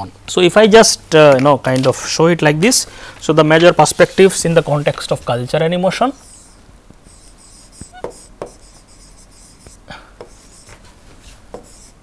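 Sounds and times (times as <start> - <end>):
stylus tapping and scratching on glass: 7.1 - 10.8.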